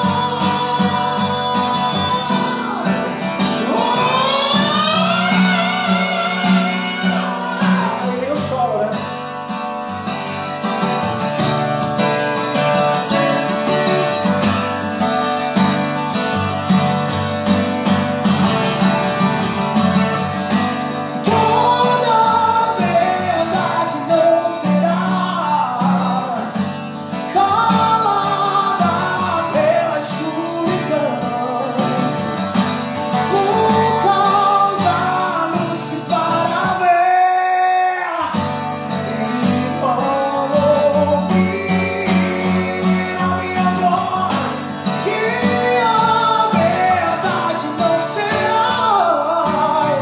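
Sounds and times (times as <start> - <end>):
man singing: 0.0 - 9.4, 10.0 - 14.5, 18.6 - 50.0
acoustic guitar strumming: 0.0 - 50.0.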